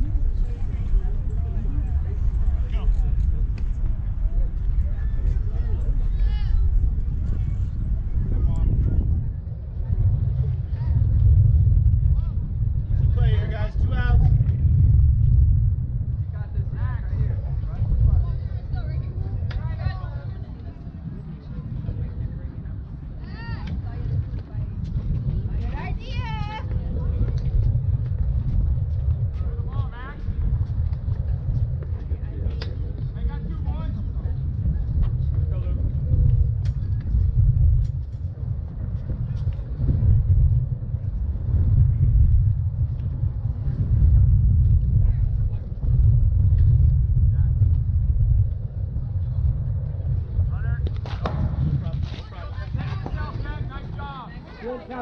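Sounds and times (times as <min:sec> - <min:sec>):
wind buffeting microphone: 0:00.0 - 0:55.0.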